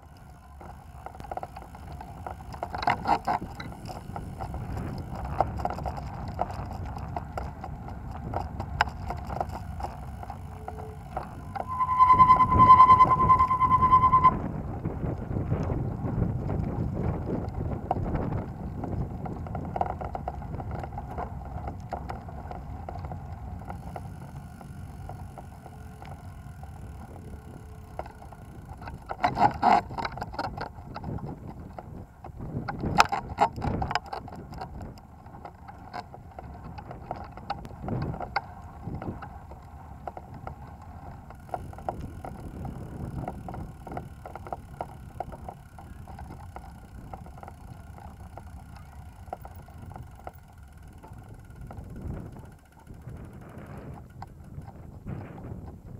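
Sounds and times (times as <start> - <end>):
bike tyres rolling on pavement: 0.0 - 55.9
wind on microphone: 0.6 - 24.1, 24.7 - 55.9
steady high beep: 10.5 - 14.4.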